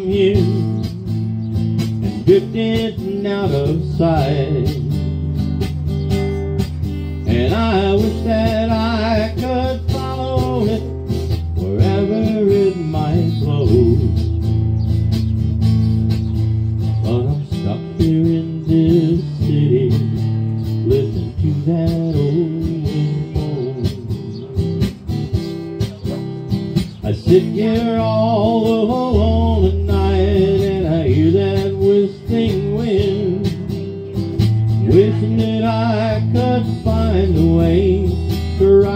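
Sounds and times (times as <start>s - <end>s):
man singing: 0.0s - 5.3s, 7.2s - 14.3s, 16.9s - 25.0s, 26.9s - 38.9s
acoustic guitar strumming: 0.0s - 38.9s.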